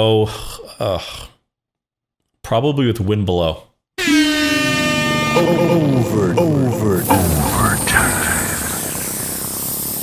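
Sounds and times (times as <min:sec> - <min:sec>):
steady hiss: 0:07.0 - 0:10.0.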